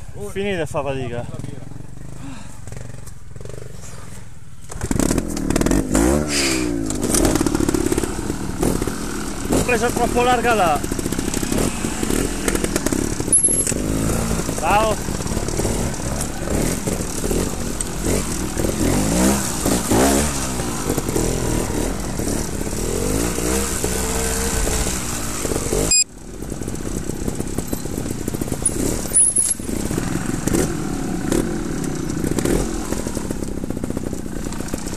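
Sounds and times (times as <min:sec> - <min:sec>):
motorcycle engine revving: 0:00.0 - 0:34.9.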